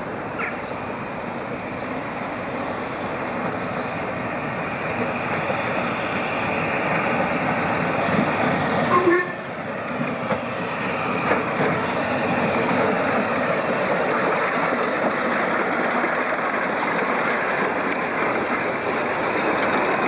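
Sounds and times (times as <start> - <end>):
steam locomotive running: 0.0 - 20.0.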